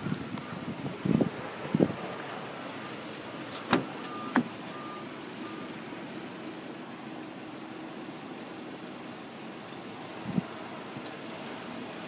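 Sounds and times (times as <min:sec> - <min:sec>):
road traffic noise: 0:00.0 - 0:12.0
faint high beep: 0:04.0 - 0:05.7.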